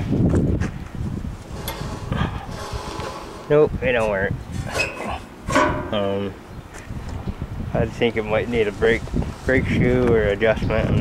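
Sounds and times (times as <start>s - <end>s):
low rumble: 1.1s - 10.0s.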